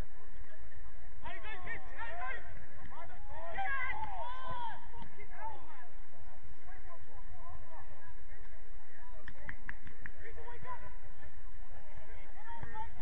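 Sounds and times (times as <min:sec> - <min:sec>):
distant footballers shouting: 0:00.0 - 0:08.9.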